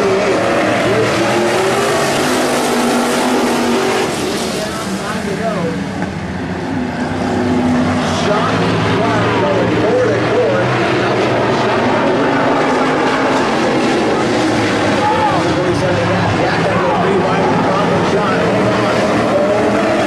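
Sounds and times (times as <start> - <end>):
race car engines roaring: 0.0 - 20.0
spectators talking: 0.0 - 20.0.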